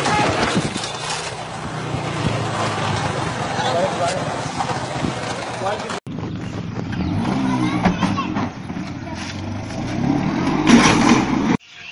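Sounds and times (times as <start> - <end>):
scooter engine running: 0.0 - 9.9
people's voices: 2.6 - 6.0, 7.0 - 9.7.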